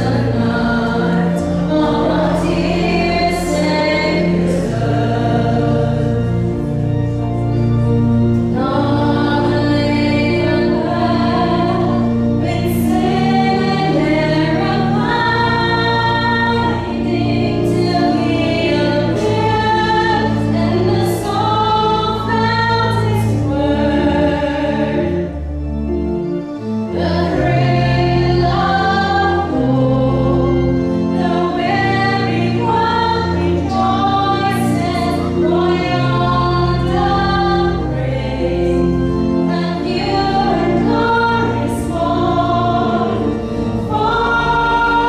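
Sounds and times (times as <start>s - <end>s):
choir-like voices: 0.0s - 7.4s, 8.3s - 25.4s, 26.9s - 45.0s
musical accompaniment with bass: 0.0s - 45.0s.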